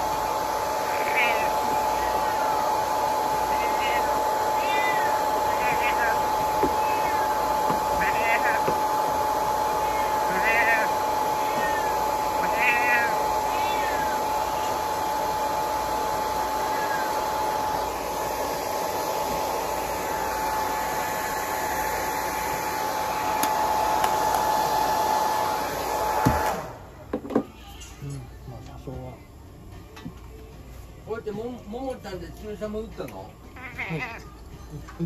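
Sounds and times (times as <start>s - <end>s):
hair dryer whining: 0.0s - 27.2s
cat meowing: 0.9s - 8.8s, 9.7s - 14.8s, 16.5s - 17.2s, 33.6s - 34.4s.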